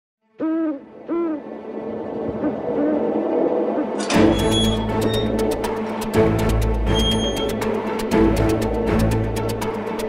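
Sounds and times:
owl hooting: 0.4s - 1.5s.

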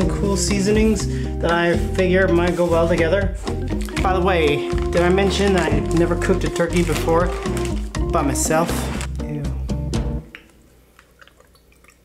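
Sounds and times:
wet squelching of hands in turkey: 3.4s - 8.1s, 10.3s - 12.0s.

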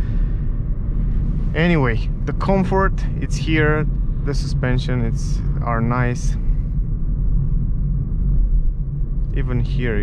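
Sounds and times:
road tyre and engine rumble: 0.0s - 10.0s.

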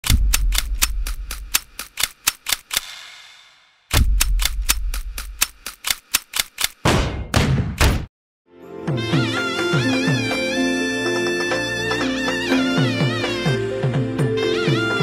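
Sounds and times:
rapid mechanical clicking: 0.0s - 3.0s, 3.9s - 6.8s.

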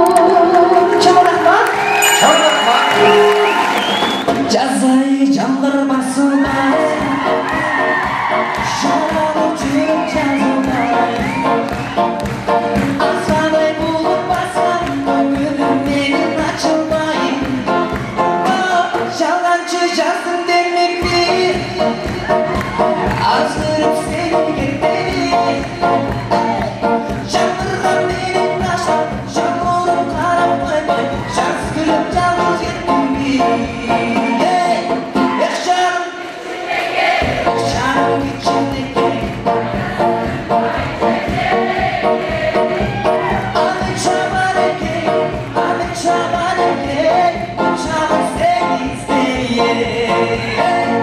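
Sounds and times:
man singing: 0.0s - 3.5s, 4.3s - 11.6s, 12.6s - 36.2s, 37.5s - 39.2s, 43.5s - 51.0s.

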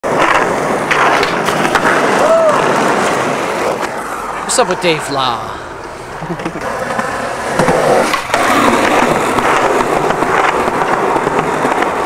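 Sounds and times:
skateboard clicks: 0.0s - 4.0s, 6.3s - 12.0s
skateboard wheels rolling on asphalt: 0.0s - 12.0s.

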